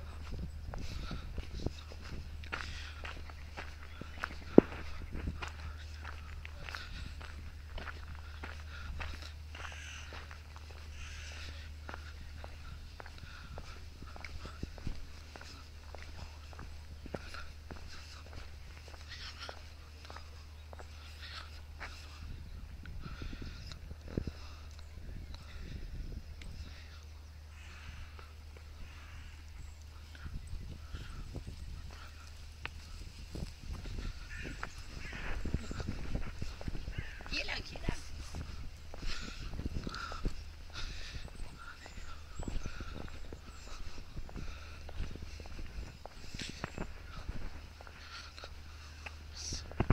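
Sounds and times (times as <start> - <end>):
short bird calls: 0.0 - 33.0, 33.8 - 49.8
footsteps on paved path: 0.0 - 49.9
steady low rumble: 0.0 - 49.9.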